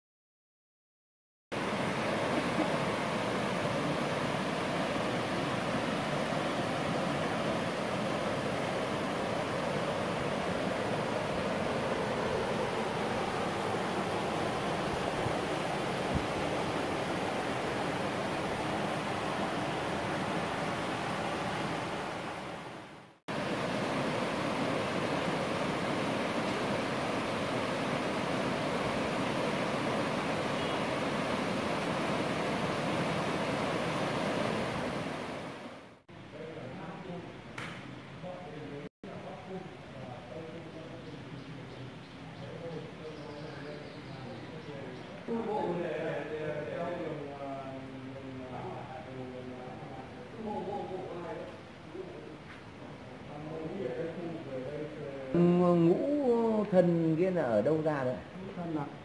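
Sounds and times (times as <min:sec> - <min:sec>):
water rushing over rocks: 0:01.6 - 0:36.0.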